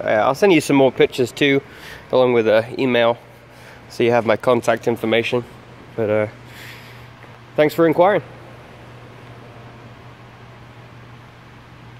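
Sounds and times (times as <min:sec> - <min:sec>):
constant low hum: 0:00.0 - 0:11.9.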